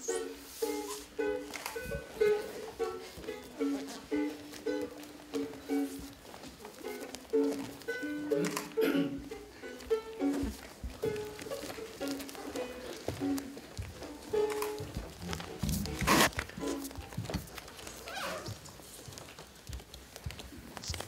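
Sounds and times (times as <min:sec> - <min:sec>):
plucked string instrument notes: 0:00.0 - 0:17.2.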